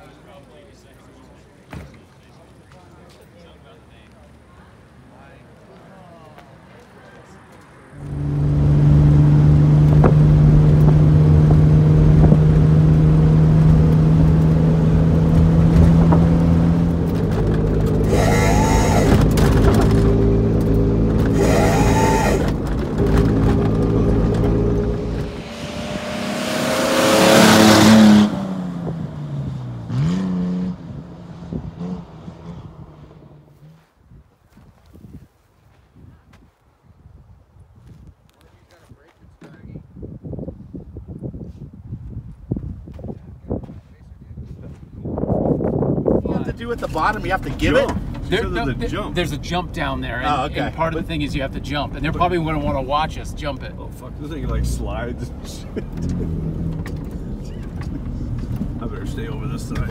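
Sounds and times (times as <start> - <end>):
loud rising rush: 8.0 - 17.0, 18.0 - 33.5
car engine from inside cabin: 8.0 - 30.8, 46.9 - 59.9.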